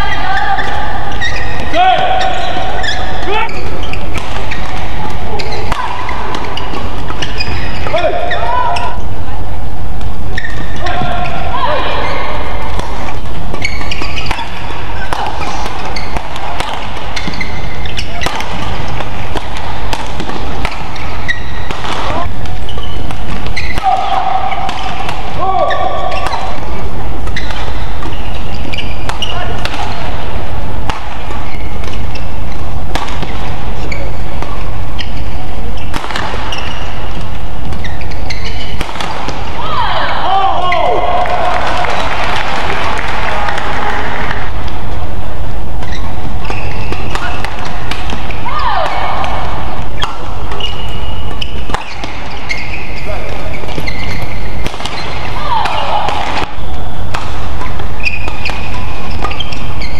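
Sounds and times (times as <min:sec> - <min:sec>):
shoes squeaking on court: 0:00.0 - 0:09.2, 0:10.0 - 0:59.9
crowd noise: 0:00.0 - 0:59.9
racket striking shuttlecock: 0:12.6 - 0:39.6, 0:45.8 - 0:59.9.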